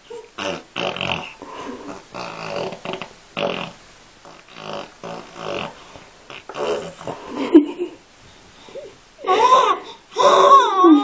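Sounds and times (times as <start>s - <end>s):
baby vocalizing: 4.4s - 7.3s, 8.8s - 11.0s.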